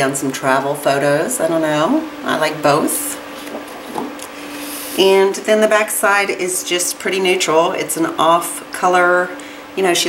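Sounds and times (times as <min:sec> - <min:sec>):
paper rustling: 0:03.3 - 0:05.0
paper sliding over paper: 0:03.4 - 0:05.1.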